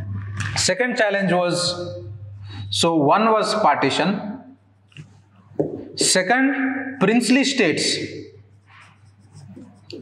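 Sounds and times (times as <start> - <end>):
marker writing on whiteboard: 7.4 - 10.0.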